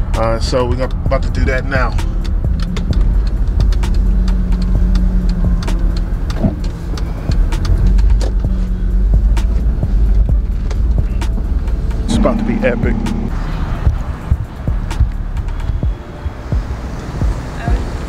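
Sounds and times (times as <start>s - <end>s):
car engine and road rumble: 0.0s - 18.0s.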